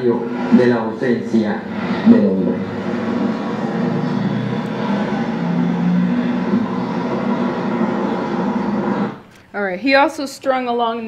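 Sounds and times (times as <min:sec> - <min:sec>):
engine-like drone over speakers: 0:00.0 - 0:09.4.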